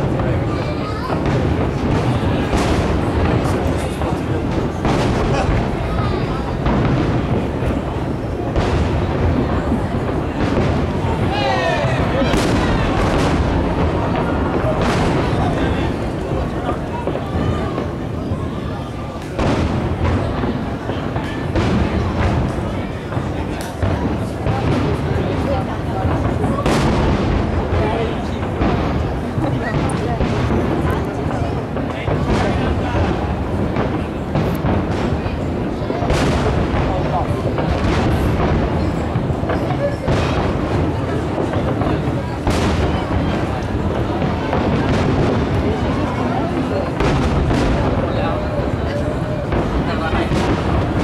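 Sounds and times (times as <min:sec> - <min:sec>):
firework shells bursting: 0:00.0 - 0:51.0.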